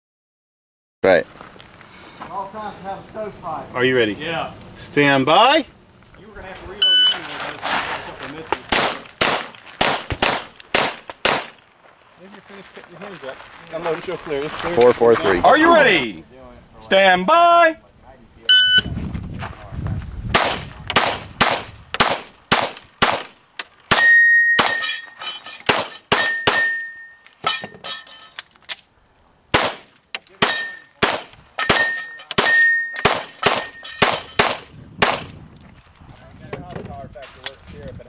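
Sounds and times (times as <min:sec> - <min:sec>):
pistol shots: 0:08.7 - 0:11.6, 0:20.3 - 0:24.9, 0:25.7 - 0:26.8, 0:29.5 - 0:35.3
steel targets ringing: 0:23.9 - 0:28.4, 0:30.4 - 0:31.0, 0:31.6 - 0:34.4.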